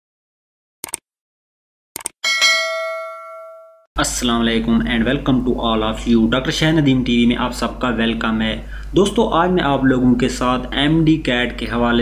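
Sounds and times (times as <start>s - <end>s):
notification bell chime: 2.2s - 3.9s.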